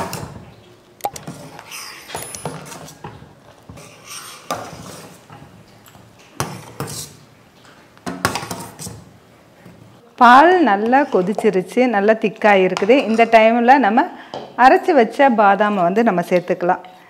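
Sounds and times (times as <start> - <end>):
ladle scraping a metal pot: 1.2 - 5.5, 6.4 - 7.3, 8.3 - 9.1.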